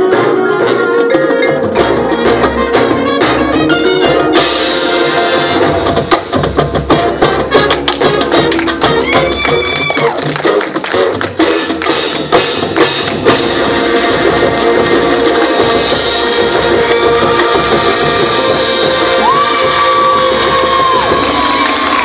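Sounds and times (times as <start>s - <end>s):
marching band playing: 0.0s - 22.0s.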